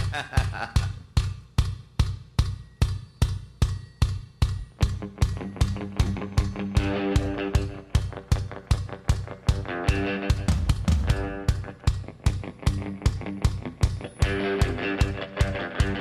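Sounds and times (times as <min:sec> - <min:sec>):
steady drum beat: 0:00.0 - 0:16.0
electric guitar: 0:04.9 - 0:16.0.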